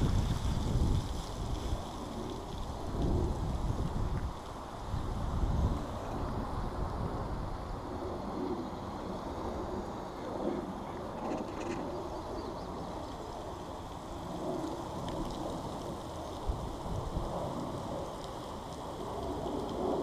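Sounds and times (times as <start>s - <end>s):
wind rumble on microphone: 0.0s - 20.0s.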